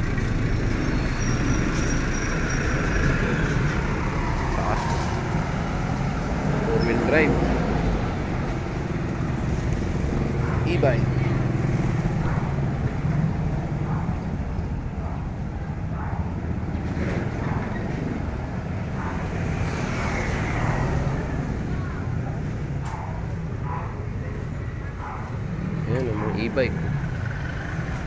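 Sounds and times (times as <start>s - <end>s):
motorcycle engines passing: 0.0s - 28.0s.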